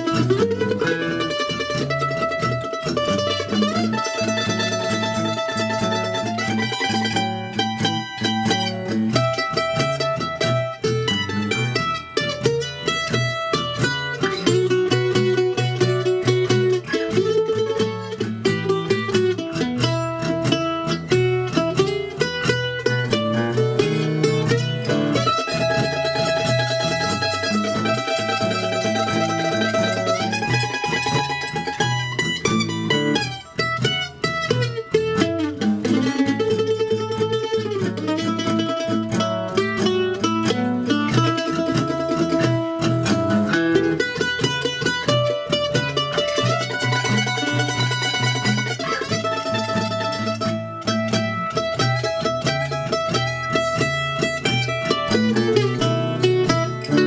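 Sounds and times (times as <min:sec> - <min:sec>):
mandolin playing blues: 0:00.0 - 0:57.0.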